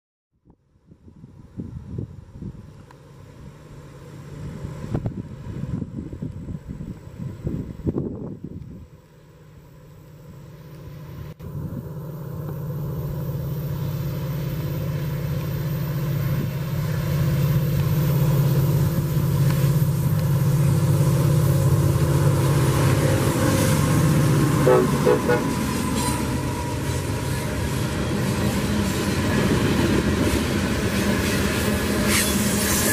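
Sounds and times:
diesel train drone: 0:00.5 - 0:32.9
wind buffeting microphone: 0:00.9 - 0:02.8, 0:04.5 - 0:08.9.

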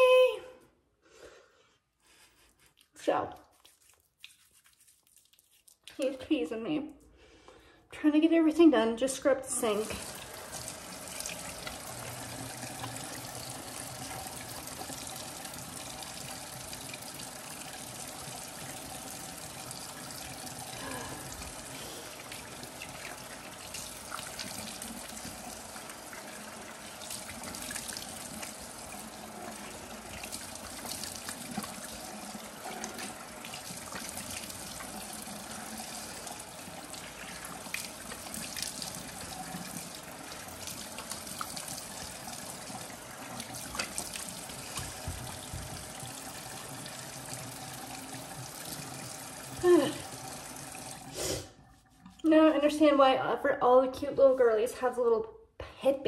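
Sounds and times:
tap water running into sink: 0:09.5 - 0:51.4.

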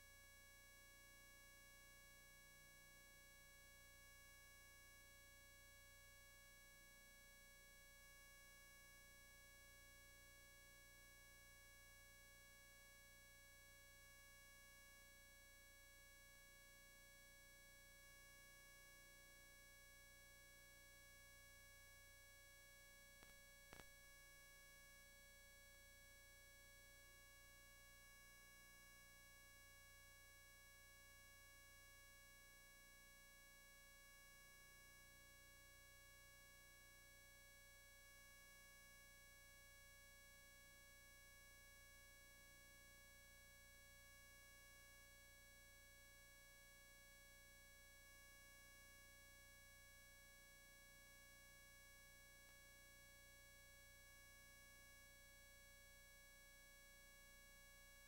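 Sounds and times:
faint electrical hum: 0:19.4 - 0:29.6.

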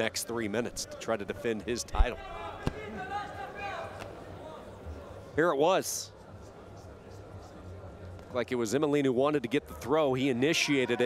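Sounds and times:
echoing voices and shouts: 0:01.7 - 0:05.2.

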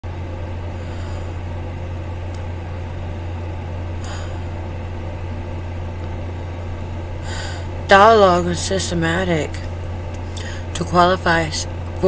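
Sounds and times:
low-pitched hum: 0:00.0 - 0:12.0.

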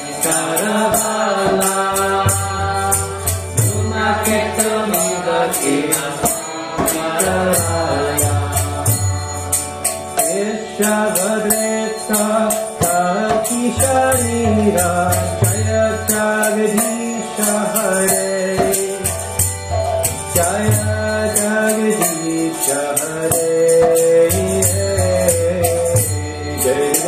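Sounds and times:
man chanting: 0:00.0 - 0:09.3, 0:20.3 - 0:27.0.

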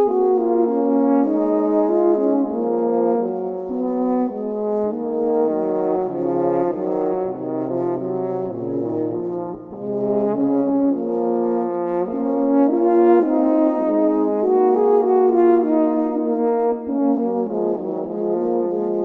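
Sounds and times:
french horns playing: 0:00.0 - 0:19.0.

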